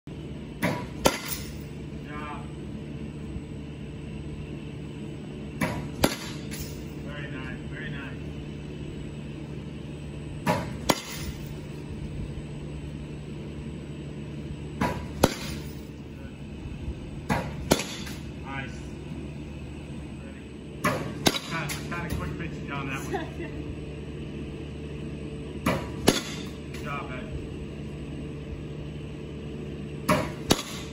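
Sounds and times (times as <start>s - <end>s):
bat cracking a ball: 0.6s - 1.6s, 5.6s - 6.7s, 10.4s - 11.5s, 14.8s - 15.8s, 17.2s - 18.3s, 20.8s - 21.9s, 25.6s - 26.6s, 30.0s - 30.9s.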